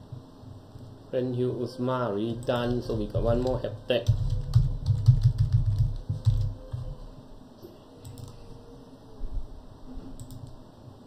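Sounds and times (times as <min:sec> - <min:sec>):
typing on computer keyboard: 0:02.4 - 0:06.9, 0:08.0 - 0:08.4, 0:10.2 - 0:10.5.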